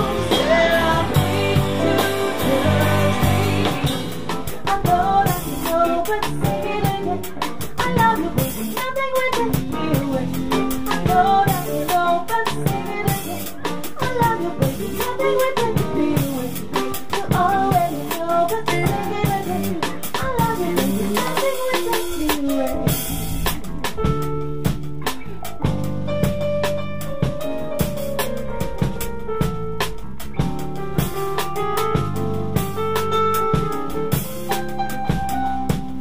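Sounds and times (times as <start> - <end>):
bending melodic lead line: 0.0 - 15.1
drum kit: 0.0 - 36.0
electric bass: 0.0 - 36.0
electric guitars: 0.0 - 36.0
keyboards: 0.0 - 36.0.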